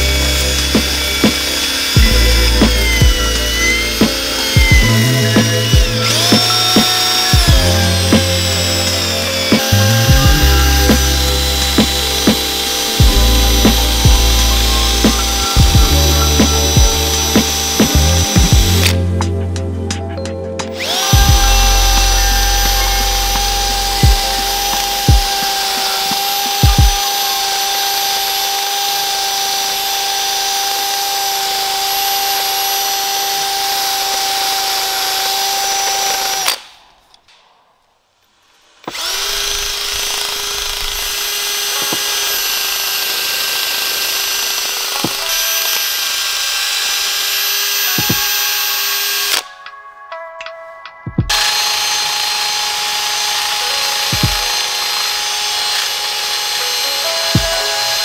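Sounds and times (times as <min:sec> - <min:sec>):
drill wire wheel whine: 0:00.0 - 0:19.2, 0:20.6 - 0:36.6, 0:38.8 - 0:49.5, 0:51.3 - 0:58.0.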